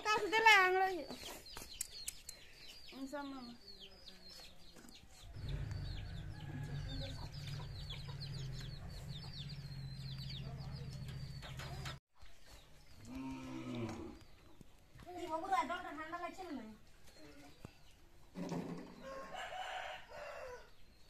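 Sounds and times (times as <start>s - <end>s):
chicks peeping: 3.8s - 12.0s.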